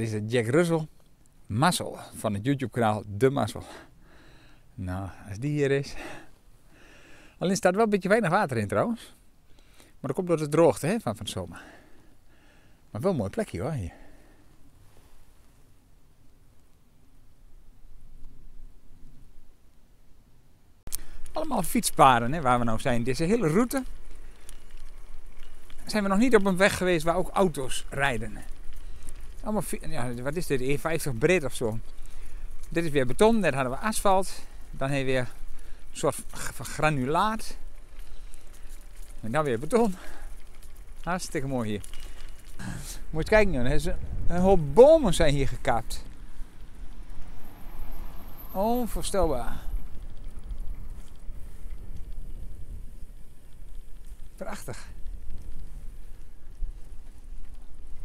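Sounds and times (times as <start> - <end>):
faint clicks: 20.9 - 21.4, 23.8 - 26.0, 41.7 - 43.1, 49.7 - 58.0
bicycle tyres rumbling on concrete: 20.9 - 58.0
wind buffeting microphone: 21.6 - 58.0
wind on microphone: 43.0 - 45.4.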